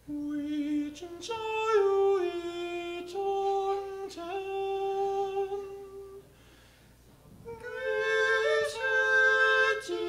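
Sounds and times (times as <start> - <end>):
male vocal ensemble holding chord: 7.5 - 10.0.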